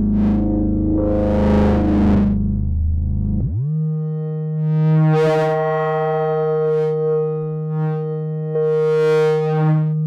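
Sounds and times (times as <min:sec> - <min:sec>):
synthesizer low note with filter sweep: 0:00.0 - 0:10.0.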